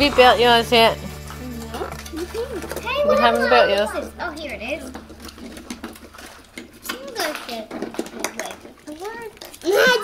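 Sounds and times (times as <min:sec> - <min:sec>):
children's voices: 0:01.4 - 0:05.1, 0:06.8 - 0:10.0
loud child's voice: 0:02.8 - 0:04.9.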